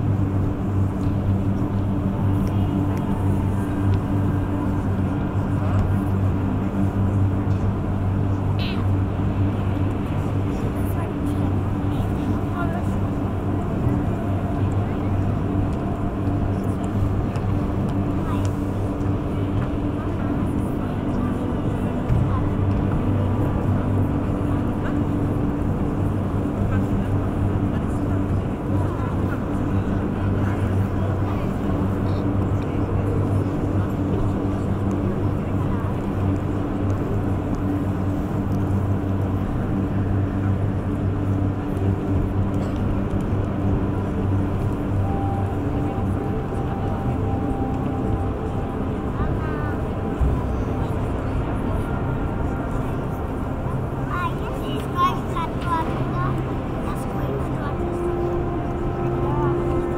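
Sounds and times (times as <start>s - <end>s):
murmur of voices: 0.0s - 59.9s
steady low drone: 0.0s - 59.9s.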